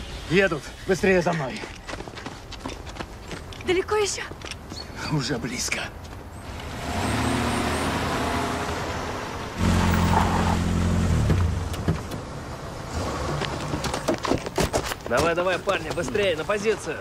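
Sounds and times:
cars driving on gravel: 0.3 - 17.0
close car engine: 6.4 - 14.1.

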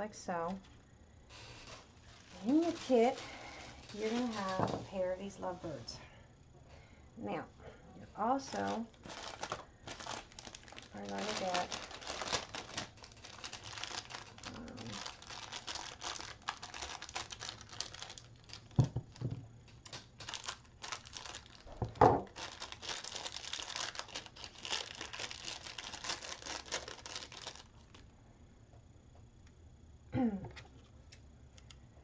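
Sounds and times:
craft materials crinkling and rustling: 0.6 - 6.0, 8.3 - 28.1.

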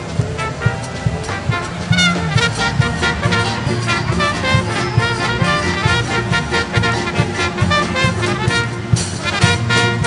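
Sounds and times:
brass band playing: 0.0 - 10.0
low thumping beat: 0.0 - 10.0.

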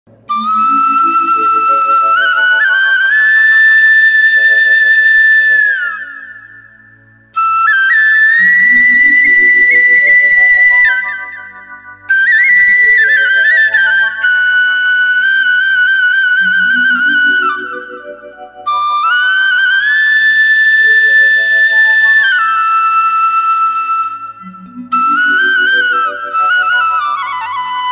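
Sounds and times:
flute-like melody: 0.1 - 27.9
rising arpeggio: 0.3 - 3.5, 8.4 - 14.3, 16.5 - 19.3, 24.4 - 27.4.

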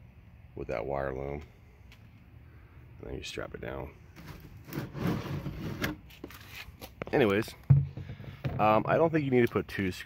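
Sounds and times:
plastic gas can scraping: 4.2 - 6.7, 7.6 - 8.9.

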